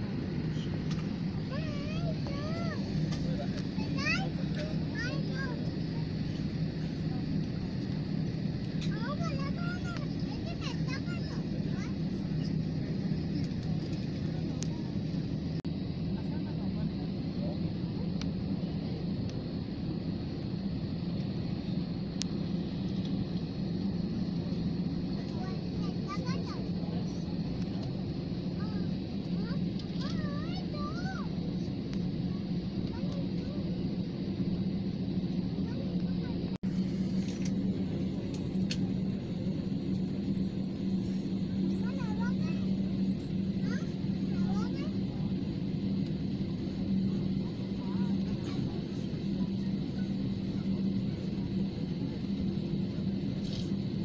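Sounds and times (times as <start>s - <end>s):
airliner cabin drone: 0.0s - 54.0s
indistinct passenger voices: 0.0s - 54.0s.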